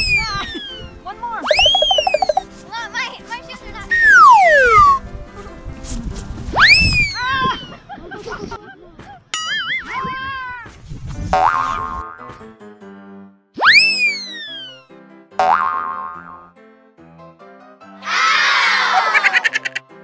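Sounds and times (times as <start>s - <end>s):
upbeat background music: 0.2s - 2.4s, 3.9s - 5.0s
cartoon springy boing: 1.5s - 2.4s, 3.9s - 5.0s, 11.4s - 12.4s, 15.4s - 16.5s
rising and falling swoop: 1.5s - 2.4s, 3.9s - 5.0s.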